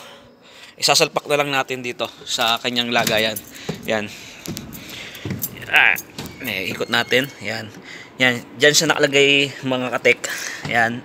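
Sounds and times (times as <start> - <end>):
low steady background noise: 0.0 - 11.0.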